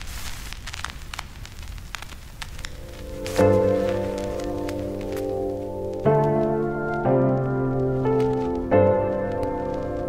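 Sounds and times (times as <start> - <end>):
sharp crackles and clicks: 0.0 - 10.0
steady hiss and low rumble: 0.0 - 10.0.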